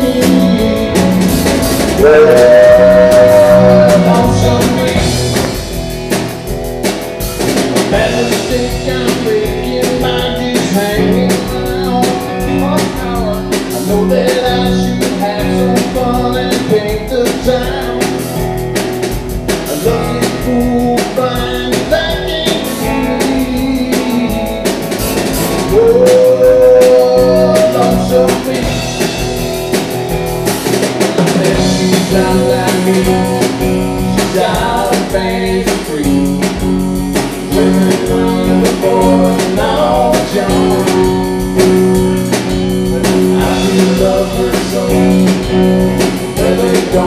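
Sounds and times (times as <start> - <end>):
bending electric guitar lead note: 0.0 - 6.3
live blues-rock band: 0.0 - 47.0.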